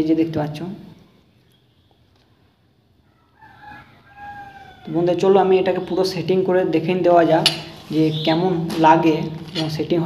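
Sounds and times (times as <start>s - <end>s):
rooster crowing: 3.0s - 5.2s.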